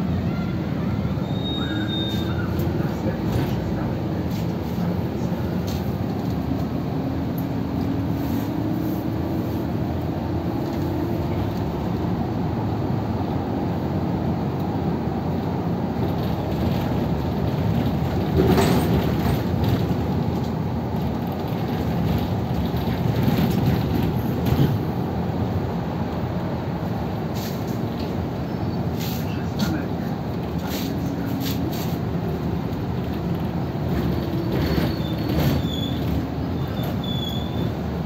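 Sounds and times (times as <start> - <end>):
bus engine and road rumble: 0.0 - 38.0
faint high squeal: 0.3 - 2.6, 34.8 - 37.8.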